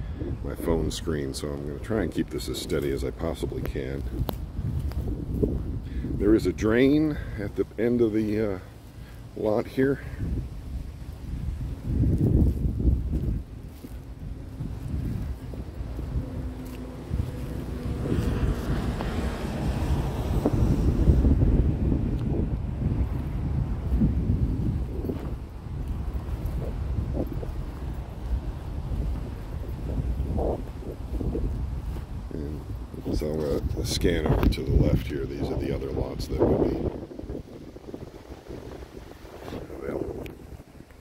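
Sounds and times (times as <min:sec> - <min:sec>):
wind buffeting microphone: 0:00.0 - 0:41.0.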